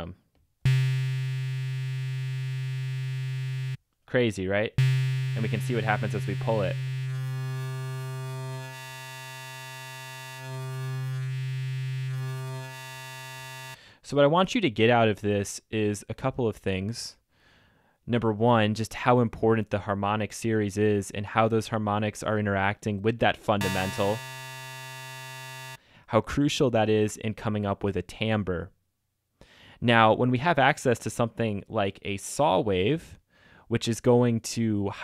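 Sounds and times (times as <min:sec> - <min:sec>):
synthesizer low note: 0:00.7 - 0:03.8, 0:04.8 - 0:13.8, 0:23.6 - 0:25.8.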